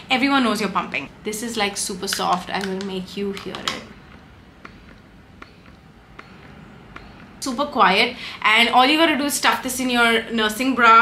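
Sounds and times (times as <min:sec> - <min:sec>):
breast pump hum: 0:02.4 - 0:08.4.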